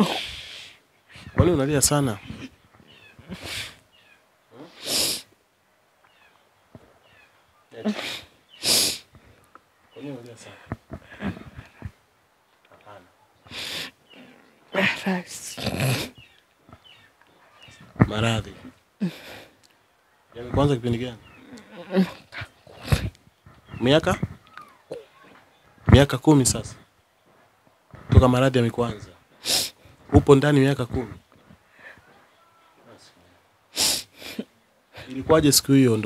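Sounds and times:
woman sobbing: 0:19.0 - 0:19.5
woman moaning: 0:21.6 - 0:23.0.

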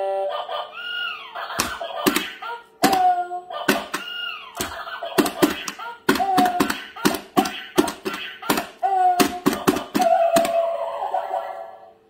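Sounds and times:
plastic hammer strikes: 0:01.6 - 0:03.1, 0:03.7 - 0:10.6.

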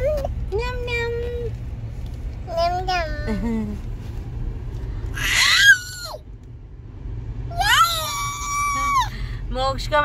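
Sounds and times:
car cabin hum: 0:00.0 - 0:10.0
toddler squealing: 0:05.2 - 0:06.2.

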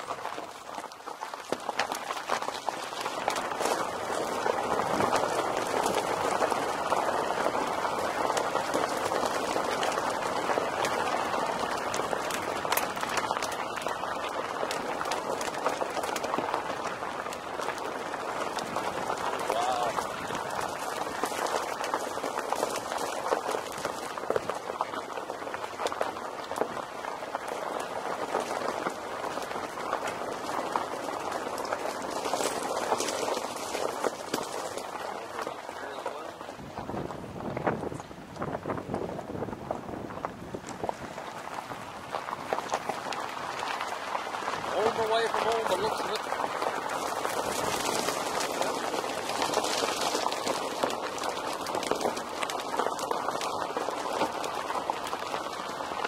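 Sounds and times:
small stones clicking and popping: 0:00.0 - 0:36.7, 0:40.3 - 0:56.0
car tyres crunching on gravel: 0:00.0 - 0:56.0.

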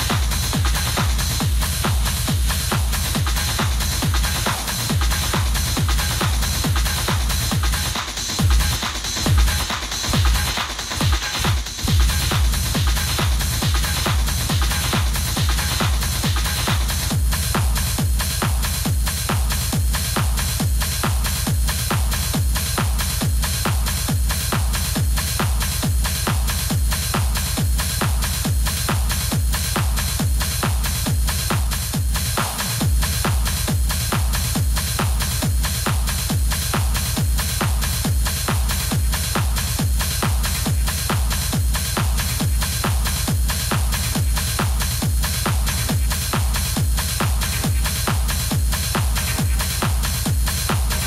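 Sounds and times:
techno music with kick drum: 0:00.0 - 0:51.0.

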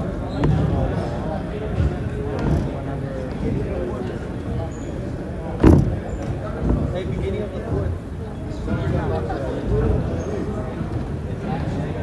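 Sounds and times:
loud short thump: 0:05.6 - 0:06.1.

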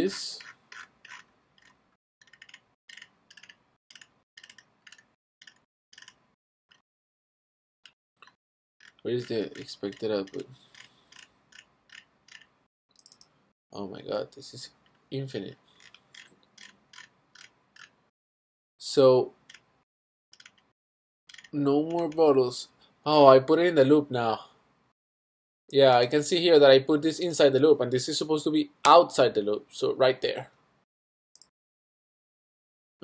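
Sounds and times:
computer keys or mouse clicking: 0:01.0 - 0:06.8, 0:07.8 - 0:13.3.

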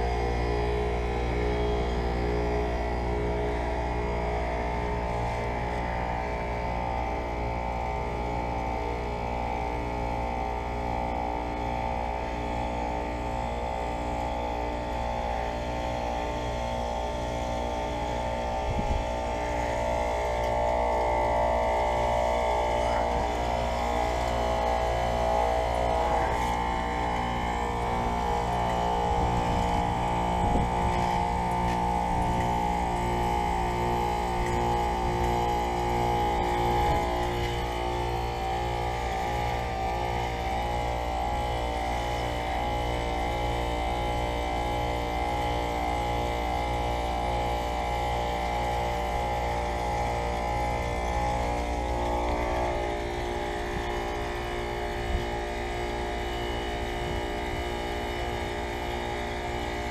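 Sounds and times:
compressor humming: 0:00.0 - 0:59.9.

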